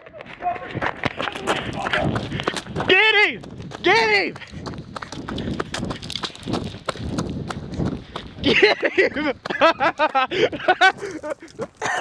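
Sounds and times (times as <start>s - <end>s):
running footsteps on dry leaves: 0.0s - 11.9s.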